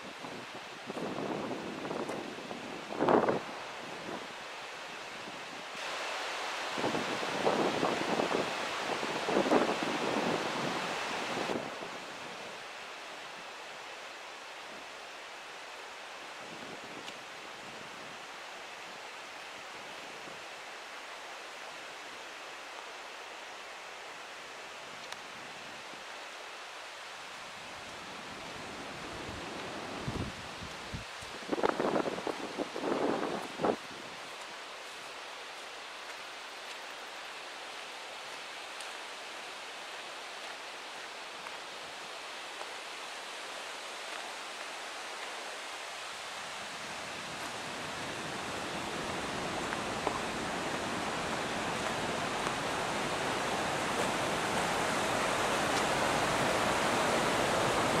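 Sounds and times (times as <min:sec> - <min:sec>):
stream running over rocks: 0:00.0 - 0:58.0.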